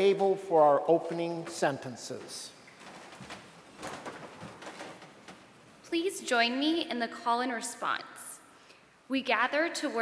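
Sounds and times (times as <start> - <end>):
faint thuds and creaks: 1.4 - 5.8
soft rustling and shuffling: 1.4 - 5.9.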